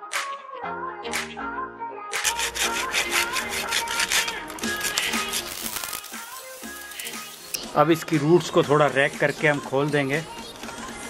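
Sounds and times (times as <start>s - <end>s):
background music with plucked notes: 0.0s - 11.0s
hacksaw rasping through soil: 2.2s - 6.0s.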